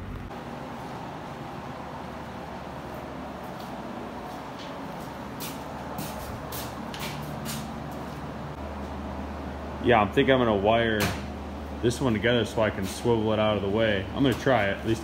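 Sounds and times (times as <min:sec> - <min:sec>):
low mechanical hum: 0:00.0 - 0:15.0.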